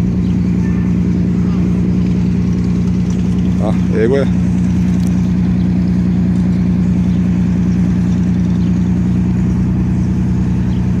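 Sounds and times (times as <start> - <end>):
large engine idling: 0.0 - 11.0.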